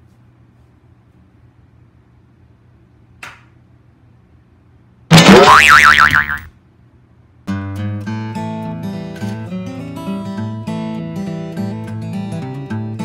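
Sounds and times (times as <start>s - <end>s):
cartoon boing sound effect: 5.1s - 6.5s
strummed acoustic guitar music: 7.5s - 13.0s.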